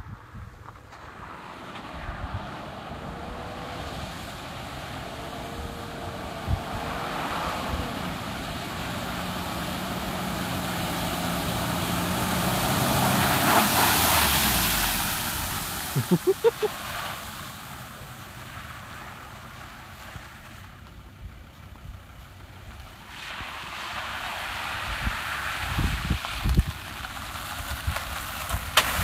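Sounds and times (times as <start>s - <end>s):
vehicle engine: 0.1s - 29.0s
water spray rushing: 3.2s - 17.4s.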